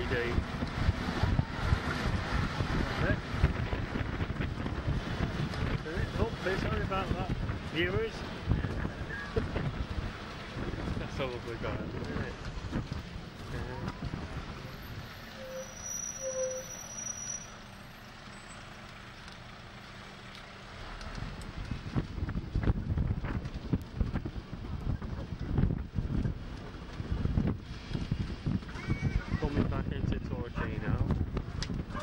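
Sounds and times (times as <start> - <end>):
wind buffeting microphone: 0.0 - 15.2, 20.9 - 32.0
bus running noise: 0.0 - 32.0.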